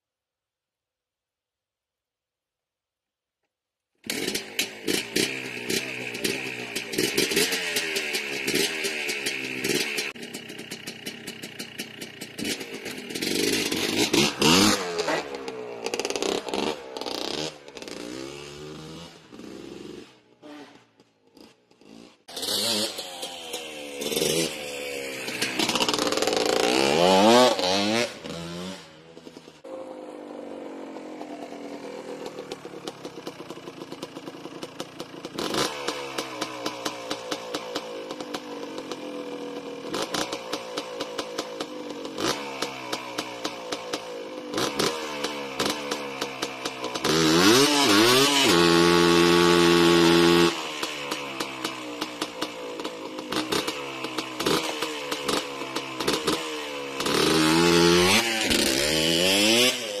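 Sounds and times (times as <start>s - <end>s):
two-stroke engine revving: 4.0s - 60.0s
wheels spinning on dirt: 4.0s - 60.0s
rapid engine ticking: 4.1s - 18.4s, 29.2s - 47.3s, 50.8s - 59.0s.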